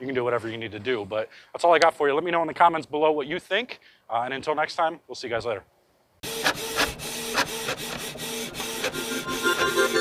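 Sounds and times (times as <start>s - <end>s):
printer-like mechanical hum: 6.2s - 10.0s.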